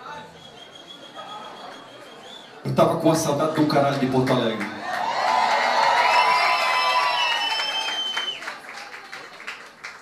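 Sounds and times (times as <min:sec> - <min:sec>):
applause: 0:04.0 - 0:10.0
audience cheering and whooping: 0:04.8 - 0:09.0.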